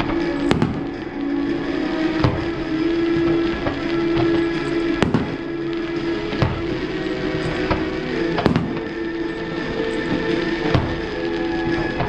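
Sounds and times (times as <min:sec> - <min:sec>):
fireworks bangs: 0:00.0 - 0:12.0
music with sustained notes: 0:00.0 - 0:12.0.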